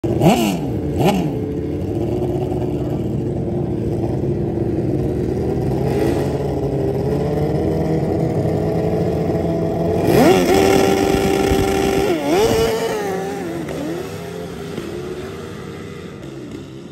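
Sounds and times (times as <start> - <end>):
drag quad engines revving: 0.0 - 16.9.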